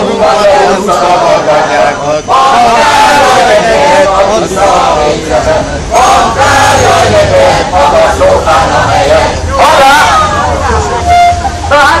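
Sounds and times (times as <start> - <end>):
crowd voices calling out: 0.0 - 12.0
steady horn-like tone: 10.8 - 11.7.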